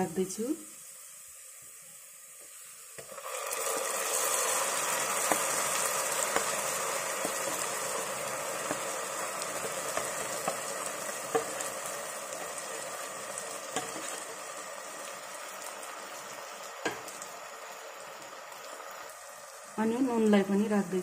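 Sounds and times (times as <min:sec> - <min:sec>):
chilli paste sizzling in oil: 0:00.0 - 0:21.0.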